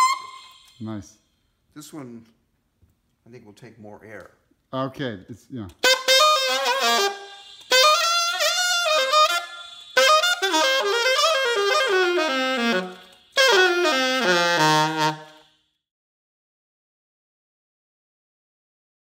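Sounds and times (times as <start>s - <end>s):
alto saxophone phrases: 5.8s - 15.4s.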